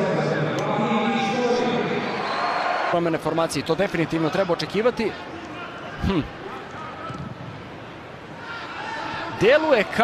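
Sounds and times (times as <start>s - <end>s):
stadium background noise: 0.0s - 10.0s.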